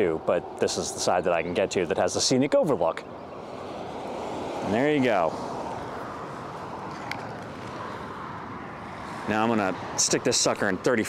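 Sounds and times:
highway traffic rumble: 0.0s - 11.0s.

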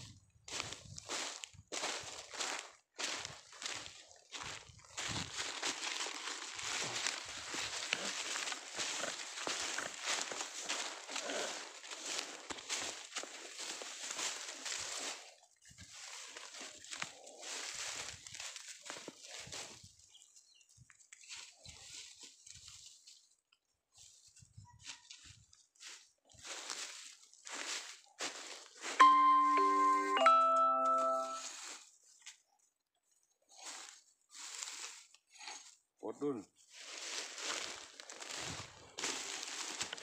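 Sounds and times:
footsteps crunching dry leaves: 0.5s - 20.0s, 21.2s - 23.4s, 24.0s - 32.2s, 33.6s - 35.7s, 36.5s - 40.0s
loud two-note chime: 29.0s - 31.5s.

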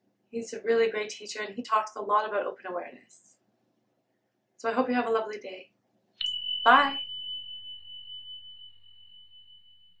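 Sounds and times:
high bell tone ringing: 6.2s - 10.0s.

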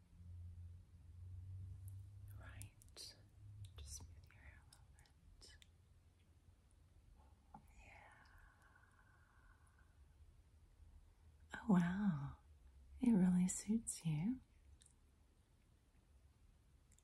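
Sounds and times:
whispered breaths: 2.3s - 5.6s, 7.6s - 10.0s.

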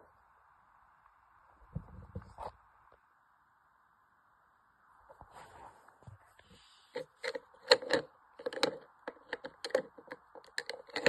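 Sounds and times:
plastic cases clicking together: 7.0s - 11.0s.

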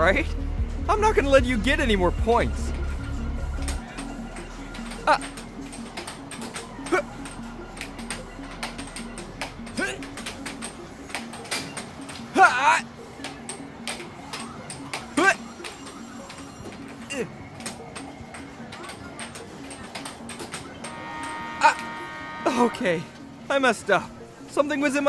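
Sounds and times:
background music: 0.0s - 25.0s.

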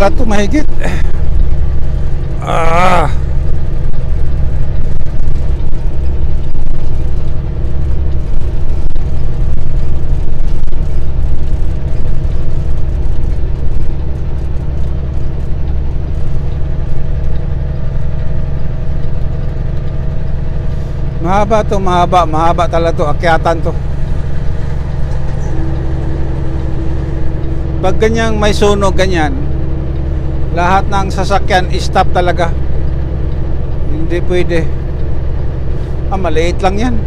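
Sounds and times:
truck diesel engine droning: 0.0s - 37.0s.

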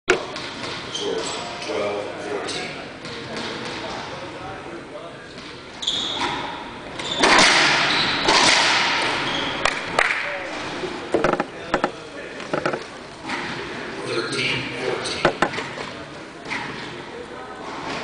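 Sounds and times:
crowd voices: 7.9s - 18.0s.

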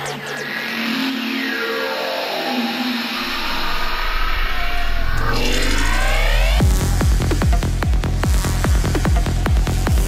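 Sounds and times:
deep bass: 3.2s - 10.0s.

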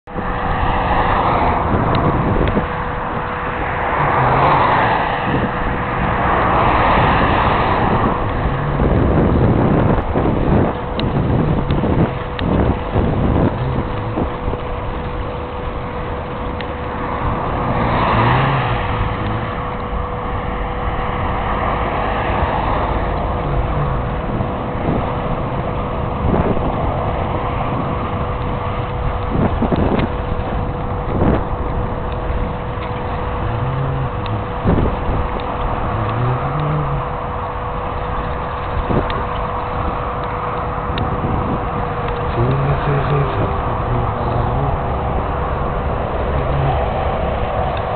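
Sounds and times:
cars passing on road: 0.0s - 47.9s
thin steady hum: 0.1s - 47.9s
wind buffeting microphone: 0.1s - 47.9s.

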